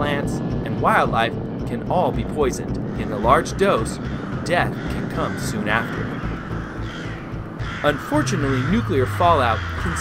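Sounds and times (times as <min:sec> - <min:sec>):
crows cawing: 0:02.8 - 0:10.0.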